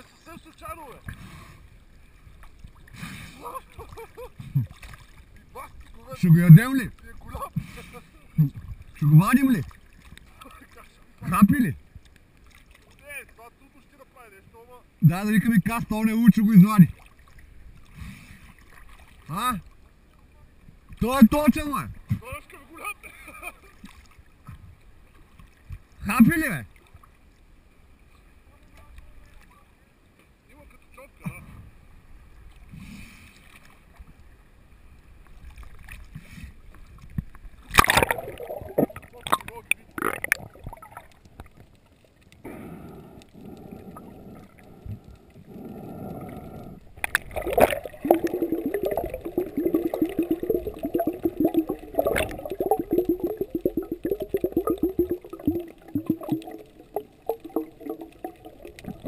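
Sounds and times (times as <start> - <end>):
rapid underwater bubbling: 37.6 - 41.6, 42.4 - 59.0
loud water splash: 37.7 - 39.4, 47.1 - 59.0.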